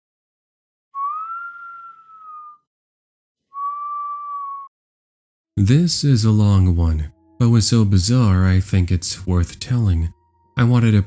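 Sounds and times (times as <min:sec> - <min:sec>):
high-pitched tones: 0:06.3 - 0:11.0.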